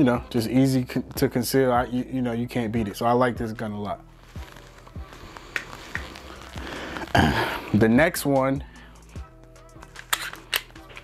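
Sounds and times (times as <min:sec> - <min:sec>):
faint background music: 0:00.0 - 0:11.0
pistol metallic clicks: 0:09.8 - 0:11.0.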